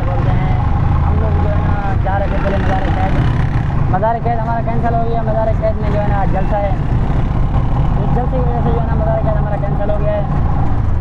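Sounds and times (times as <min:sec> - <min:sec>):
person talking: 0:00.0 - 0:06.8, 0:08.0 - 0:10.3
auto-rickshaw engine droning: 0:00.0 - 0:11.0.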